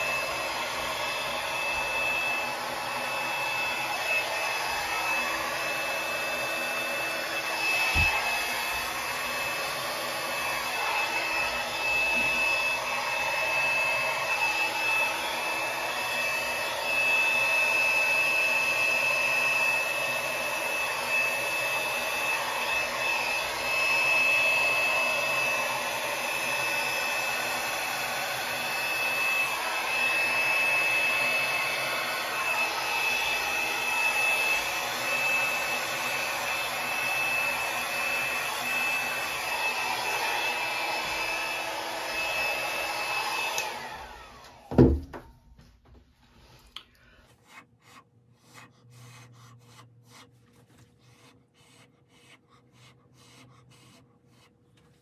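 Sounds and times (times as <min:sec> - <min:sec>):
hair dryer whining: 0:00.0 - 0:47.6.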